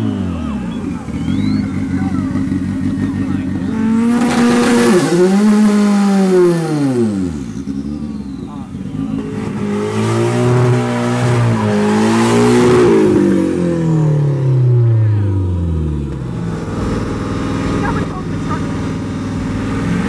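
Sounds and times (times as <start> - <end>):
car engines revving: 0.0 - 20.0.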